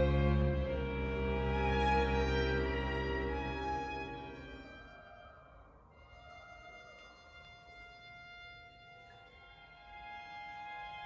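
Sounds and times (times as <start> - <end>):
soft string ensemble: 0.0 - 5.1.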